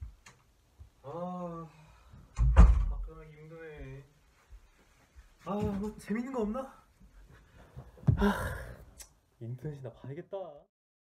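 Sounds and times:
door shutting with a loud thud: 2.3 - 3.1.

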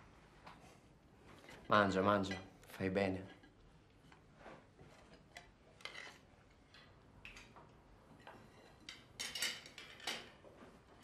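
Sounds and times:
cutlery and crockery clinking: 8.4 - 10.4.

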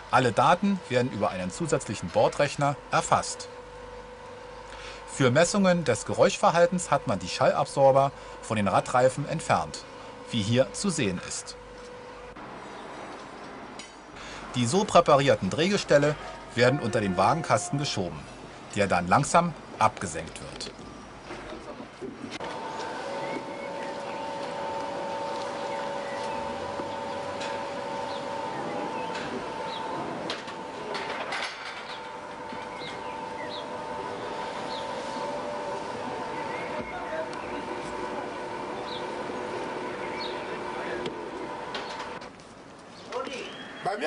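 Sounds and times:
steady electric hum: 0.0 - 43.4
railway workshop background noise: 0.0 - 44.0.

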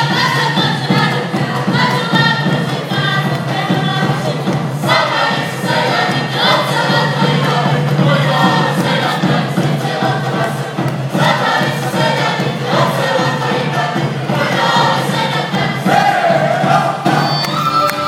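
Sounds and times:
folk orchestra playing: 0.0 - 18.0
group singing in chorus: 0.0 - 18.0.

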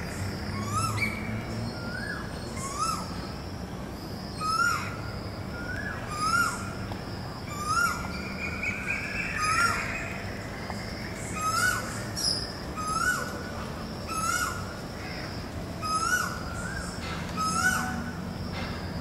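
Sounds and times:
bird calling: 0.0 - 3.4, 4.4 - 18.8.

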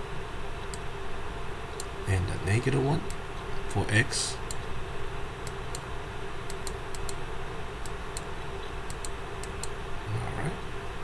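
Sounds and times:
background hiss and hum: 0.0 - 11.0.

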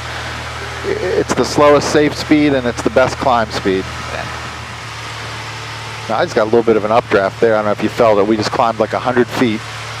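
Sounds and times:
airplane engine and propeller drone: 0.0 - 10.0.

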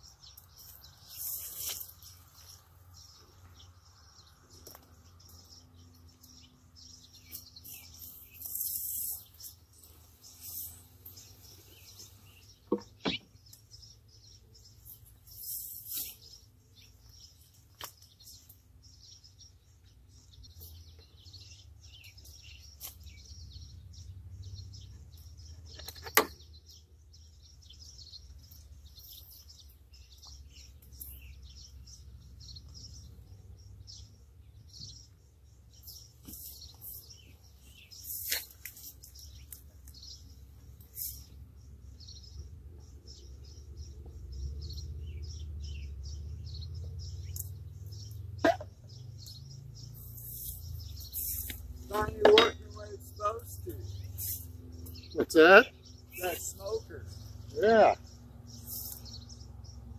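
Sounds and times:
small birds chirping: 0.0 - 59.9.

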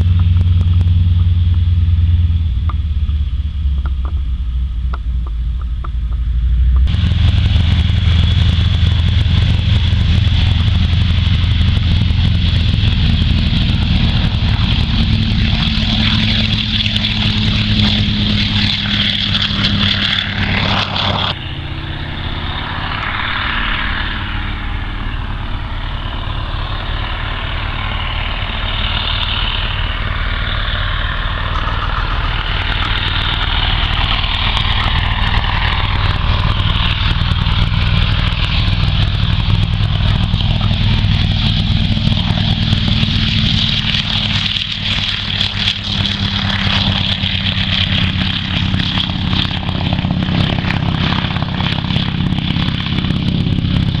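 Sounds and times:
plane radial engine and propeller: 0.0 - 54.0.

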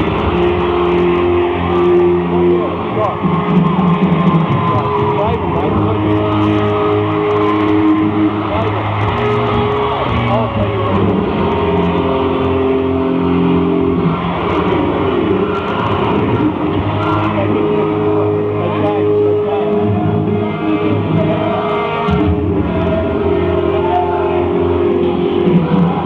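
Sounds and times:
live hard rock band: 0.0 - 26.0.

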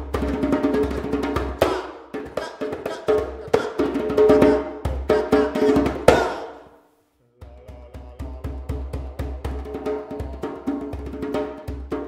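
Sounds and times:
person shouting: 1.6 - 3.9, 5.0 - 6.6.

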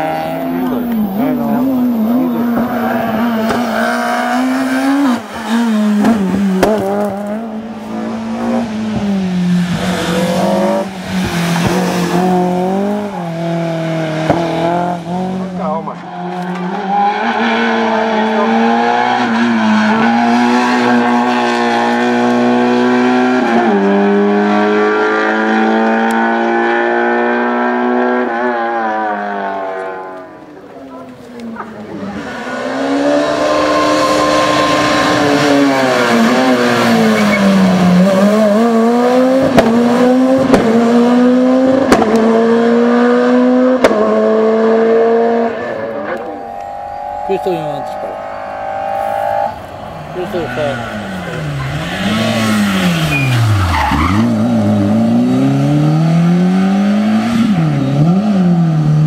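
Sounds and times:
rally cars racing past: 0.0 - 59.0.

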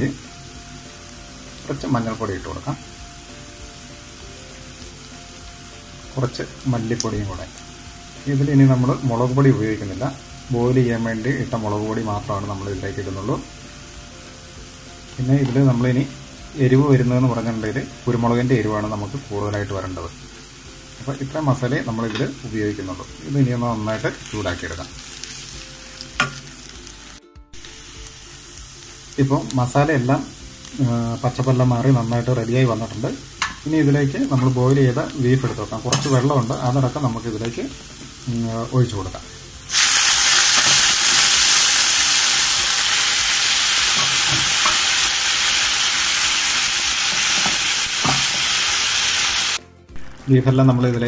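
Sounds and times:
masala sizzling in a pan: 0.0 - 50.5.

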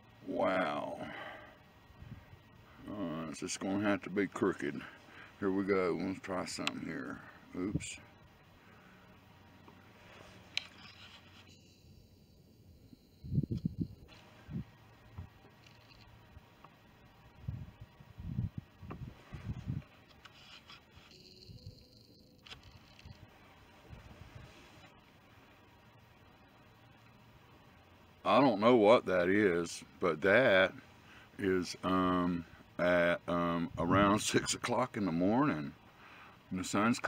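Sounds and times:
camera handling thumps and rubs: 10.2 - 11.5.

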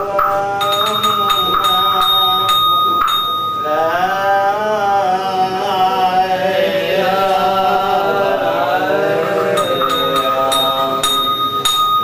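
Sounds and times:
sharp bell strikes: 0.0 - 4.0, 9.3 - 12.0
bowl bell ringing: 0.0 - 4.2, 9.2 - 12.0
monk chanting: 0.0 - 11.8.

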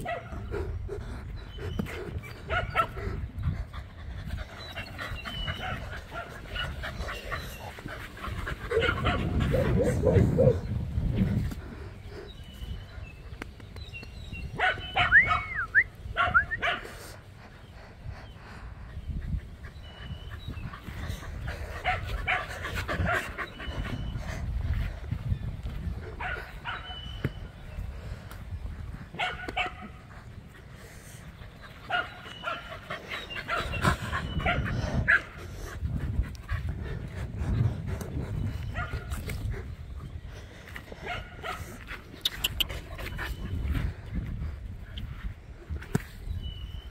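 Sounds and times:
dog barking and yipping: 2.5 - 3.0, 8.7 - 10.6
dog barking: 14.6 - 15.6, 16.2 - 16.9, 29.2 - 29.9.

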